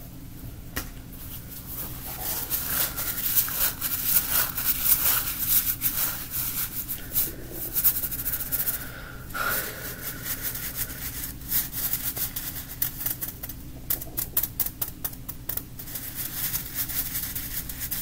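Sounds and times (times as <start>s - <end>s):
fingers rubbing toy crackly rustle: 1.6s - 8.8s, 9.9s - 18.0s.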